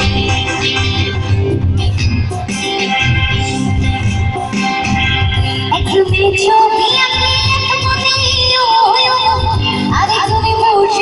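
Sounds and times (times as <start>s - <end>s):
live band playing: 0.0s - 11.0s
woman singing through pa: 5.7s - 11.0s.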